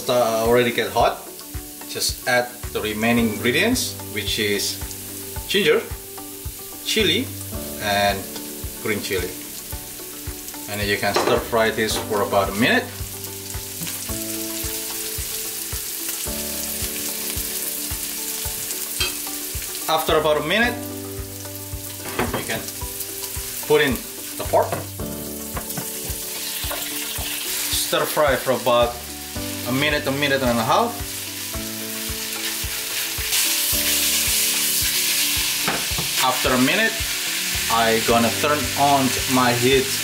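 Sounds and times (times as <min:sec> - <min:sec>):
chili and ginger sizzling in oil: 0:00.0 - 0:40.0.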